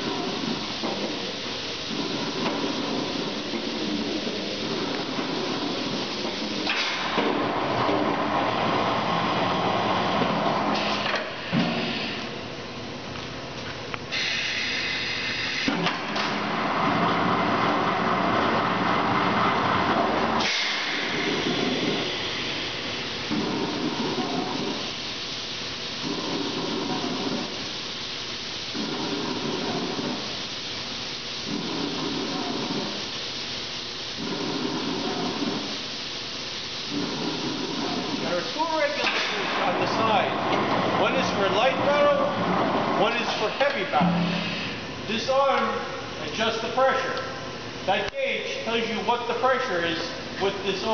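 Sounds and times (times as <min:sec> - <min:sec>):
compressed air hissing: 0:14.1 - 0:15.8, 0:20.4 - 0:40.3, 0:42.9 - 0:46.2
machine running with low pulse: 0:16.2 - 0:30.7, 0:31.3 - 0:36.0, 0:36.7 - 0:43.1.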